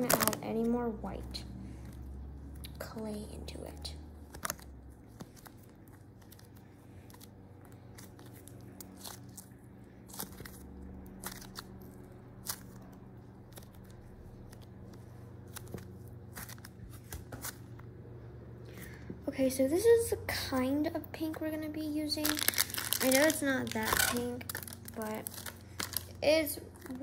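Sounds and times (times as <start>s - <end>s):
foam clay crackling: 0.0s - 17.8s, 18.8s - 27.0s
low steady hum: 0.0s - 27.0s.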